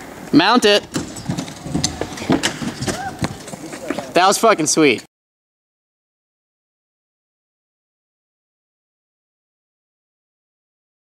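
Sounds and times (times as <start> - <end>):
skateboard clattering on wooden ramps: 0.6 - 4.2.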